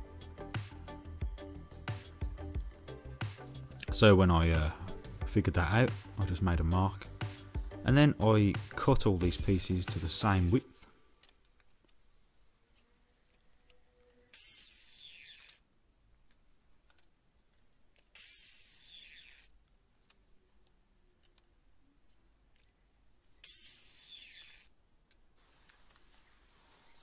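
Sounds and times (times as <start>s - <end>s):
mitre saw cutting wood: 9.2s - 10.8s, 14.1s - 15.6s, 18.2s - 19.5s, 23.4s - 24.7s.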